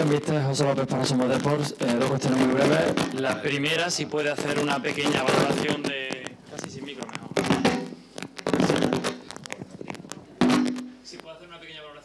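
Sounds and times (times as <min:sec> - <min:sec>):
man talking into a microphone: 0:00.0 - 0:07.6, 0:11.0 - 0:12.0.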